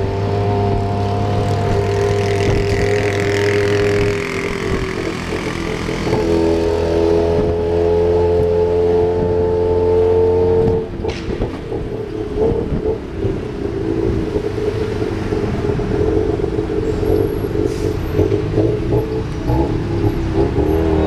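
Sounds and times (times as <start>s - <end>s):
auto rickshaw engine running: 0.0s - 21.0s
road rumble: 0.0s - 21.0s
traffic: 0.0s - 21.0s.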